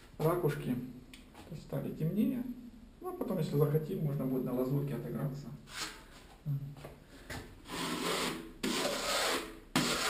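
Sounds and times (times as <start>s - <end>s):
trowel scraping plaster: 7.6s - 10.0s.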